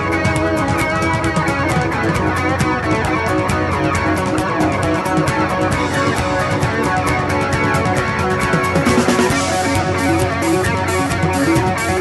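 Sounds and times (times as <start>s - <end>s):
electric guitar: 0.0s - 12.0s
funk band playing: 0.0s - 12.0s.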